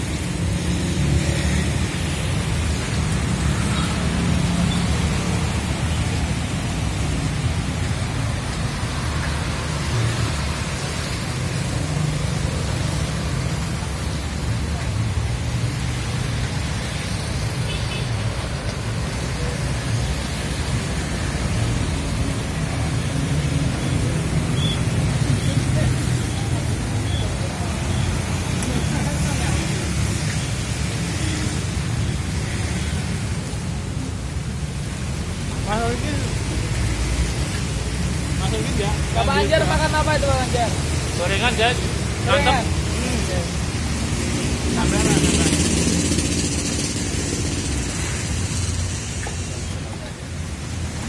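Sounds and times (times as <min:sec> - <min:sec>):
motorbikes and cars passing: 0:00.0 - 0:51.0
tyres hissing on wet road: 0:00.0 - 0:51.0.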